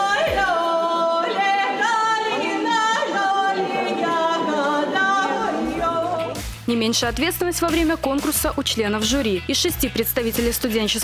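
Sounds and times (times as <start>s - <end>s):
woman singing with vibrato: 0.0s - 7.9s.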